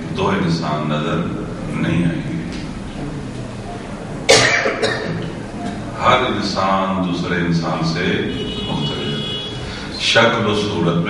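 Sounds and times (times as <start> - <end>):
person coughing: 4.3 - 5.3.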